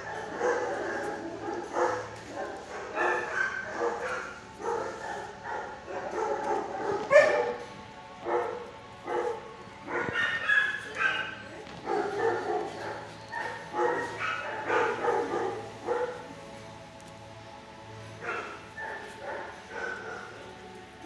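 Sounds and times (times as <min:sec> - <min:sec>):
dogs barking and whining: 0:00.0 - 0:16.9, 0:17.8 - 0:21.0.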